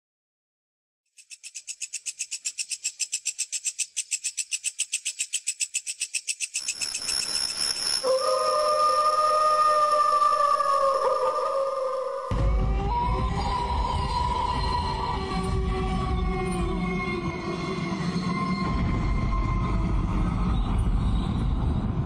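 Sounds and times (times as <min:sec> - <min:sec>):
rapid high-pitched pulsing: 0:05.6 - 0:09.1.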